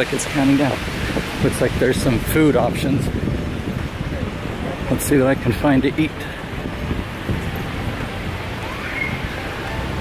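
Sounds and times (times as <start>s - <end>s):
passers-by: 0.0s - 10.0s
traffic: 0.0s - 10.0s
wind rumbling on microphone: 0.0s - 10.0s.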